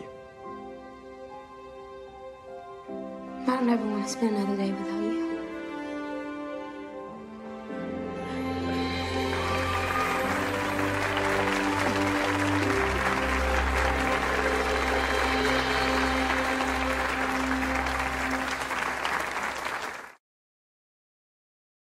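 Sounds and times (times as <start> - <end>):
music with sustained notes: 0.0 - 20.0
audience applauding: 8.4 - 20.2.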